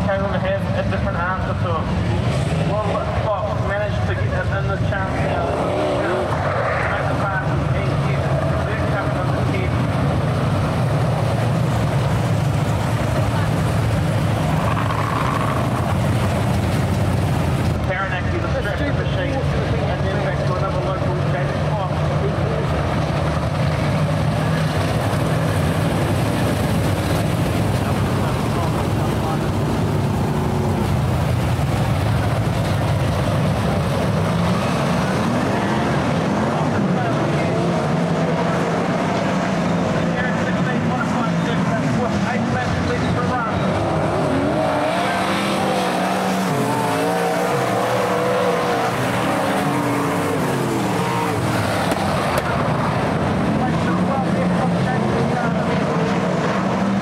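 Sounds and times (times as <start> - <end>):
race car engines droning: 0.0 - 57.0.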